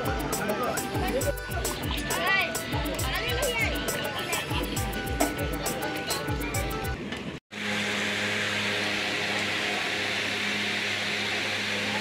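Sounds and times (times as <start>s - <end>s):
music: 0.0s - 7.3s
electric motor humming: 7.6s - 12.0s.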